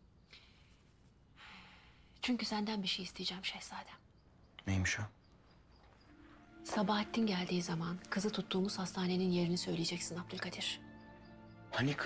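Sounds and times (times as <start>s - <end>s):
faint breath in: 0.3s - 2.2s.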